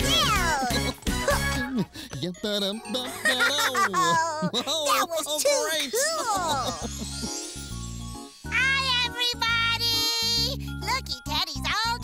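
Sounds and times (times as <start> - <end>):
high childlike character voice: 0.0 - 0.8, 8.5 - 12.0
twinkling chime tones: 6.6 - 9.1.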